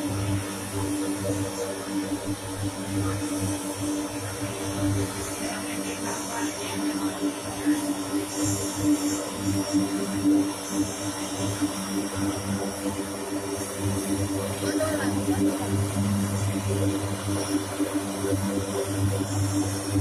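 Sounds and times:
turboprop engines running: 0:00.0 - 0:20.0.

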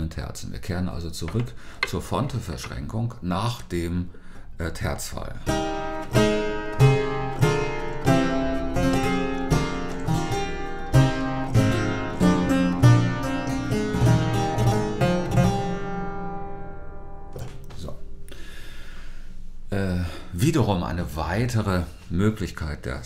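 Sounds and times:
harpsichord chords: 0:05.5 - 0:17.3.

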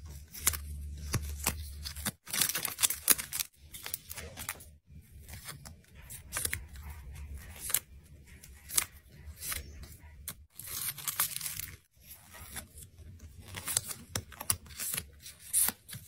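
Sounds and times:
snack packets crinkling: 0:00.3 - 0:04.7.

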